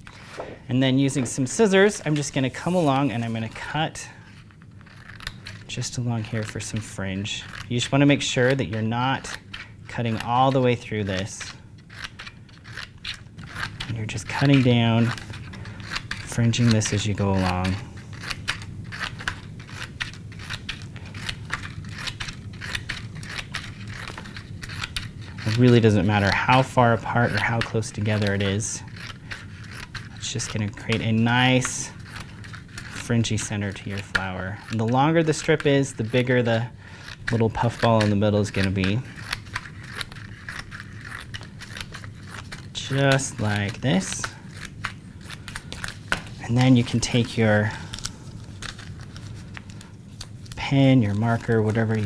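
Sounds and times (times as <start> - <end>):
scissors snipping poster board: 0.0 - 52.0.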